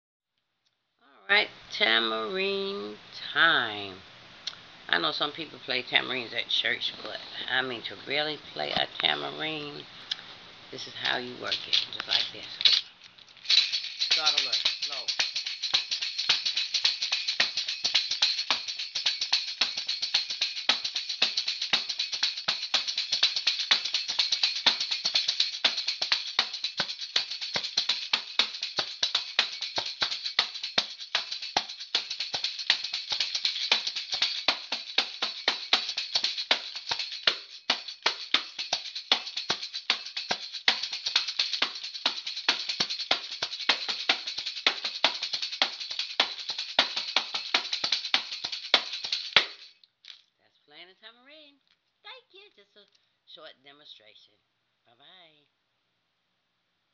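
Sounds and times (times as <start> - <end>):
tambourine jingling: 10.8 - 49.8.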